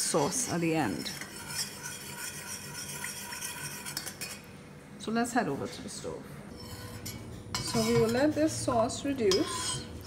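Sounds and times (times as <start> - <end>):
metal spoon stirring in saucepan: 0.0 - 4.5, 6.5 - 10.0.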